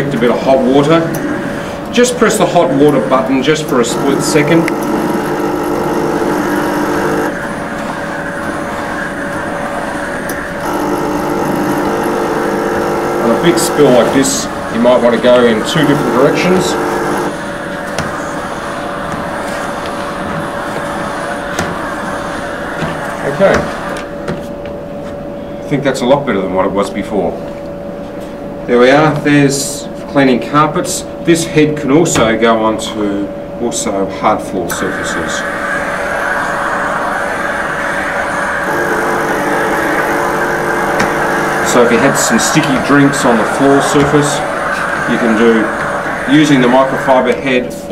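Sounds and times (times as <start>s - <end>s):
steam cleaner hum: 0.0s - 24.2s, 34.7s - 47.9s
steam hissing: 1.1s - 24.1s, 34.7s - 47.9s.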